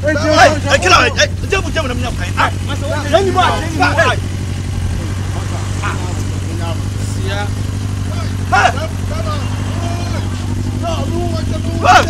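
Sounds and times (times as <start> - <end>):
low engine-like hum: 0.0 - 12.0
men shouting: 0.0 - 12.0.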